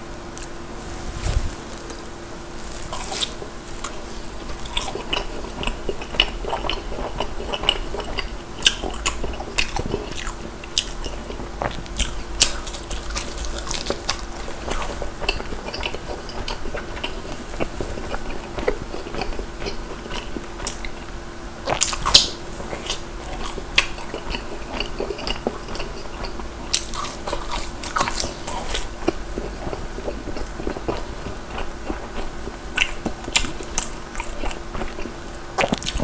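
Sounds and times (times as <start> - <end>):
crunchy food chewing: 0.3 - 36.0.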